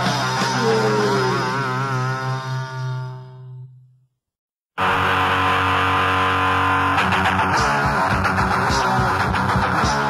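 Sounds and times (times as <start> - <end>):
distorted electric guitar chord: 0.0 - 3.4, 4.8 - 10.0
held bass note: 0.2 - 3.8.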